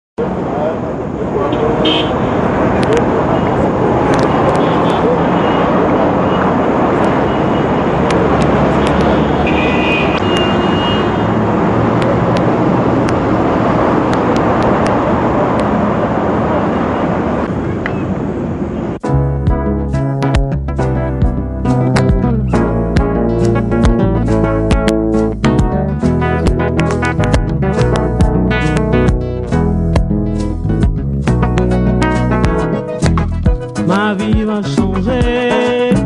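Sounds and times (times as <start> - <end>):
crowd chatter: 0.2 - 9.5
traffic noise: 0.2 - 36.0
car horn toots: 1.8 - 2.3, 4.2 - 6.5, 8.6 - 11.4.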